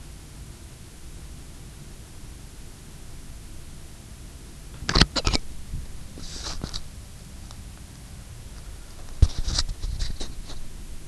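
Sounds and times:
open microphone hum and hiss: 0:00.0 - 0:11.0.

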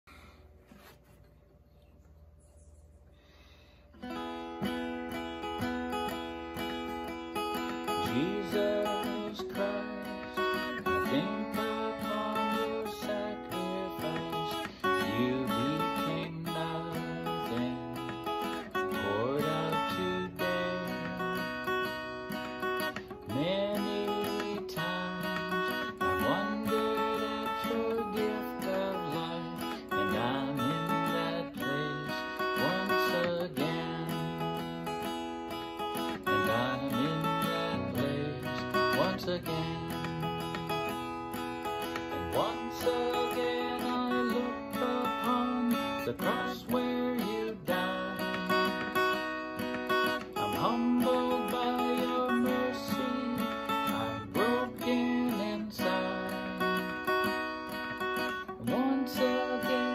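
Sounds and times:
acoustic guitar strumming chords: 0:03.2 - 0:59.9.

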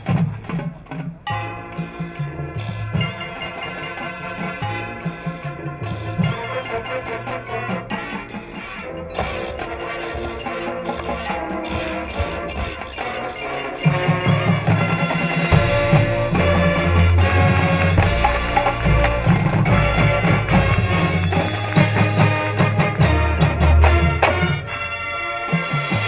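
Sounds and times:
marching band playing: 0:00.0 - 0:26.0.

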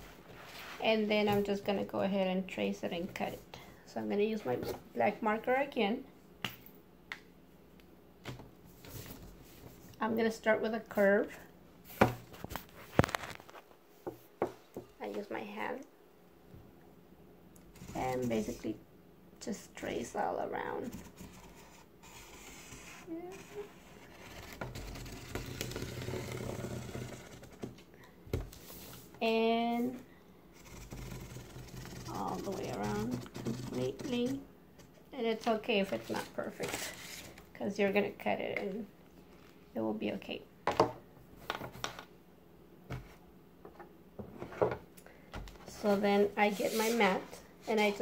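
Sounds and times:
marker scratching on paper: 0:20.8 - 0:24.4, 0:30.6 - 0:34.4.

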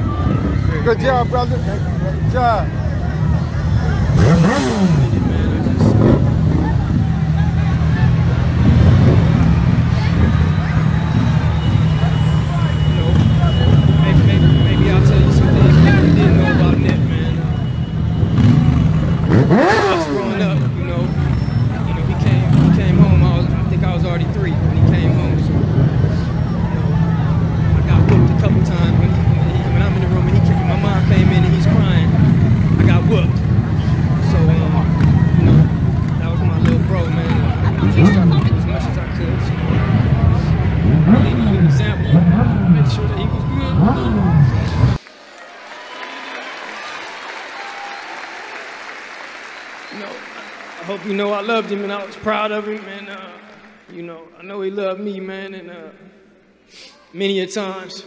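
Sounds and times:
vehicles rumbling slowly: 0:00.0 - 0:45.2
crowd voices: 0:00.0 - 0:58.0.

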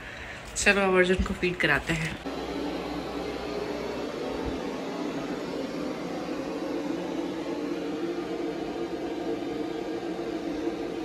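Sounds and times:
steady whirring hum: 0:00.0 - 0:11.0.

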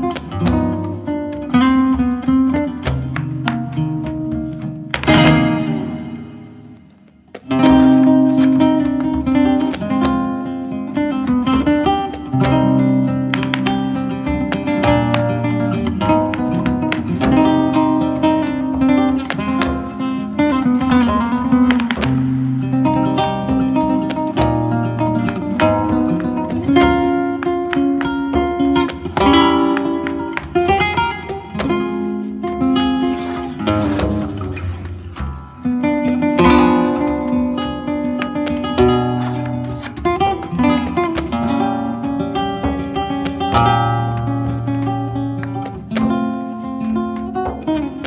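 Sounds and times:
flamenco guitar music: 0:00.0 - 0:48.0.

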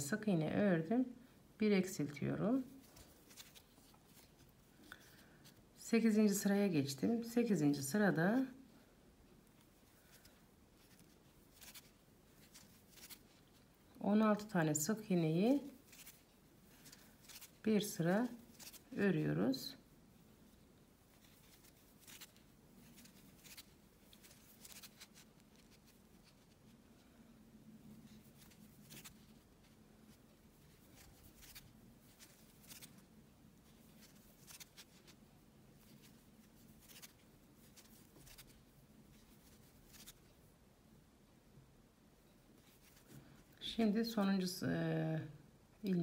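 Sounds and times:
crochet hook ticks and rustles: 0:15.8 - 0:17.7, 0:21.1 - 0:26.6, 0:35.8 - 0:40.3.

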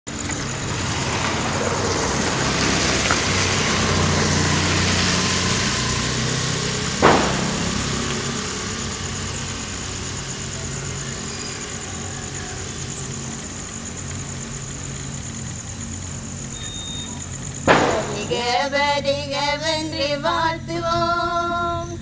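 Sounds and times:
road traffic noise: 0:00.0 - 0:19.3
vehicle engine running nearby: 0:00.1 - 0:22.0
sharp knock: 0:07.0 - 0:09.6, 0:17.7 - 0:18.7.

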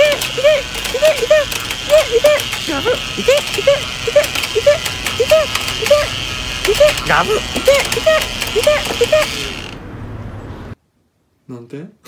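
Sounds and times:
toy motor whir and clatter: 0:00.0 - 0:09.8.

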